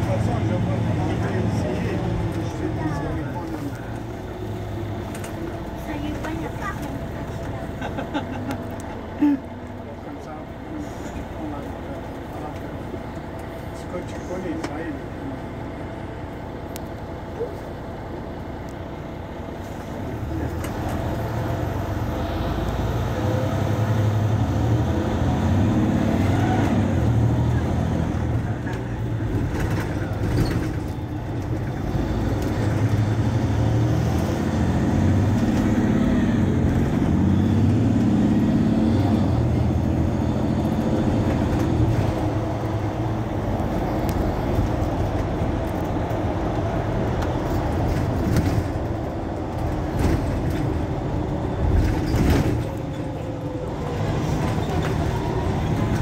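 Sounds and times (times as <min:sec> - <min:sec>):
bus diesel engine idling: 0:00.0 - 0:56.0.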